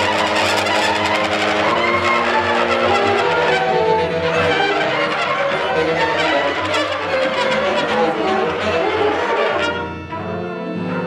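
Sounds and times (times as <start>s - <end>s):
horns cello and drums improvising: 0.0s - 11.0s.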